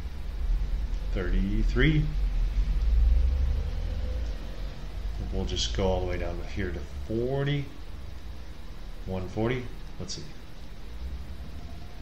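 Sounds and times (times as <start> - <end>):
faint thin hum: 0.0 - 12.0
low background rumble: 0.0 - 12.0.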